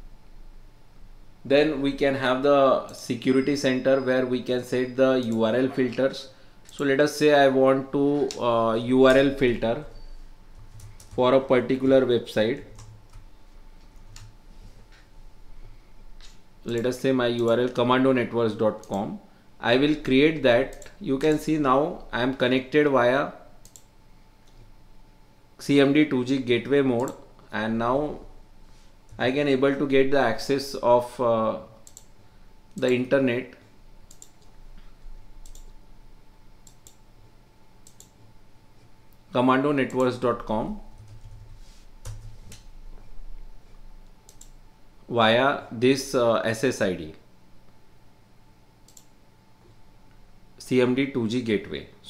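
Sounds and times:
faint steady hum: 0.0s - 52.0s
computer mouse clicking: 12.7s - 14.3s, 23.6s - 24.6s, 31.8s - 32.1s, 34.1s - 34.5s, 35.4s - 35.7s, 36.6s - 37.0s, 37.8s - 38.2s, 44.3s - 44.6s, 48.8s - 49.1s
keyboard keys clicking: 35.4s - 35.7s.

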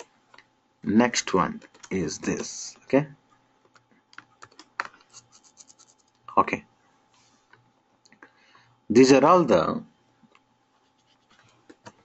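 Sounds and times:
computer keyboard typing: 1.6s - 2.6s, 3.7s - 6.2s.

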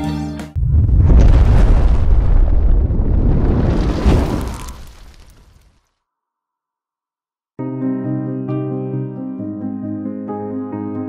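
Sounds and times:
noisy blast with deep rumble: 0.6s - 4.7s.

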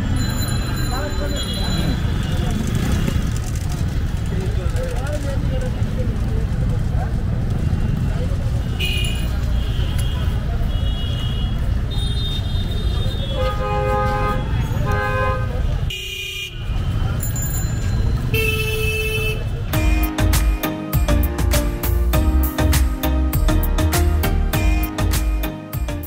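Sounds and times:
street traffic rumble: 0.0s - 26.0s
vehicle horns honking: 8.6s - 16.9s, 18.3s - 19.7s.

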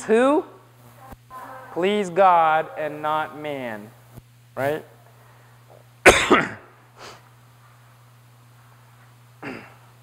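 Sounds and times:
man coughing: 6.0s - 6.7s, 9.4s - 9.9s.

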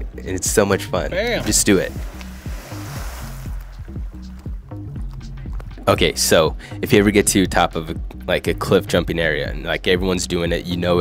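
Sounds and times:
background music with bass line: 0.0s - 11.0s
splash into a lake: 1.4s - 3.8s
spray hissing: 1.9s - 3.6s.

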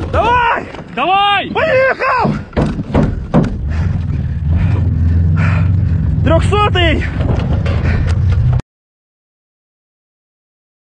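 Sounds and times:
vehicle engine droning under load: 3.0s - 8.6s.

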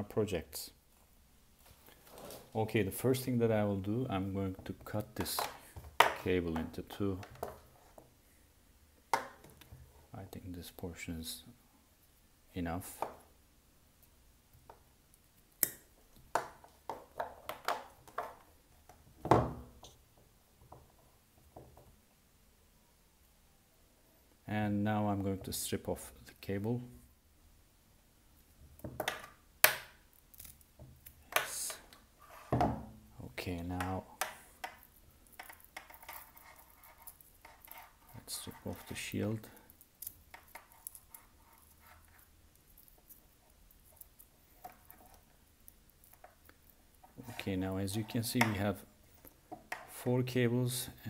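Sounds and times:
fingers scratching cable wire shield: 33.8s - 48.6s.

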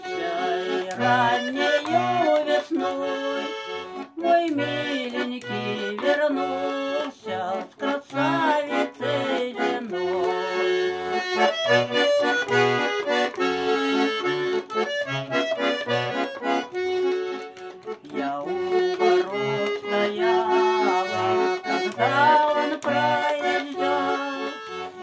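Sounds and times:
button accordion melody: 0.0s - 25.0s.

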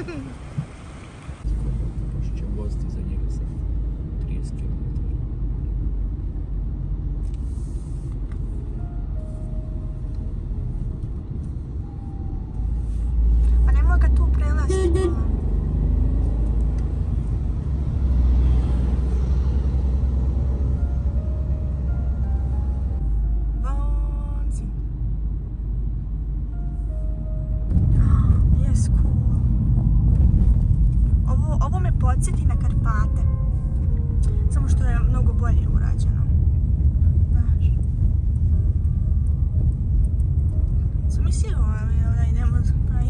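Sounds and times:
road and engine rumble: 0.0s - 43.0s.

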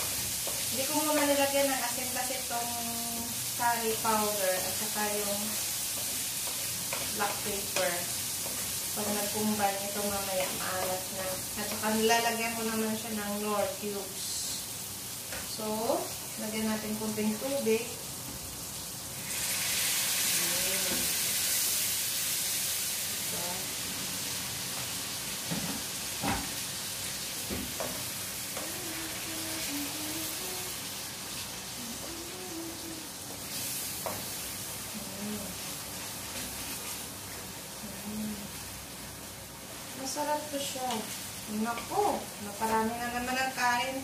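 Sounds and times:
hot oil sizzling in a pan: 0.0s - 44.0s.

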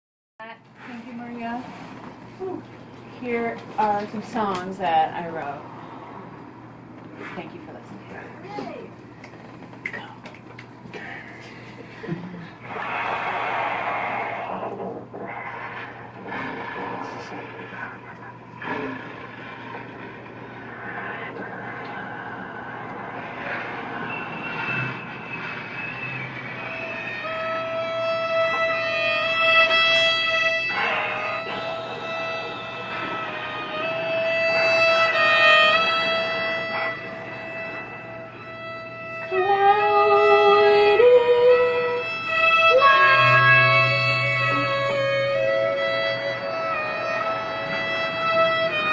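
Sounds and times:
bass clarinet: 26.6s - 38.4s, 39.2s - 48.9s
violin: 26.6s - 48.9s.

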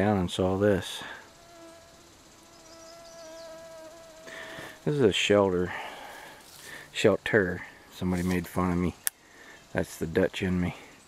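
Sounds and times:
mosquito whining: 1.3s - 4.9s.

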